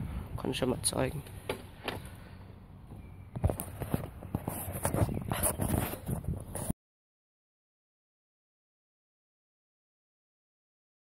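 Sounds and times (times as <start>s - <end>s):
knocks and rubs on microphone: 3.3s - 6.7s.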